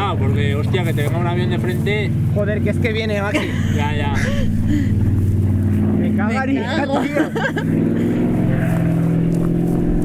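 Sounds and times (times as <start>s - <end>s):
airplane engine droning: 0.0s - 10.0s.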